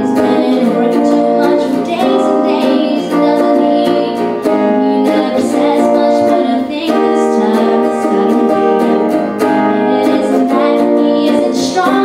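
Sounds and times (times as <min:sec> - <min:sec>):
guitar strumming chords: 0:00.0 - 0:12.0
woman singing: 0:00.0 - 0:12.0.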